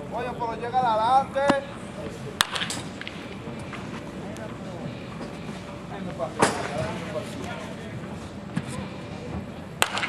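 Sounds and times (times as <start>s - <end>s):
baseball bat hitting ball: 2.4s - 3.3s, 9.8s - 10.0s
murmured voices: 3.1s - 9.8s.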